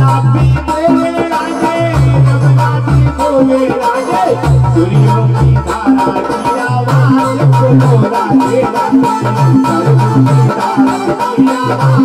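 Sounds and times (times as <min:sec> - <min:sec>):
electronic keyboard bass pattern: 0:00.0 - 0:12.0
hand drum beat: 0:00.0 - 0:12.0
harmonium: 0:00.0 - 0:12.0
man singing: 0:00.0 - 0:12.0.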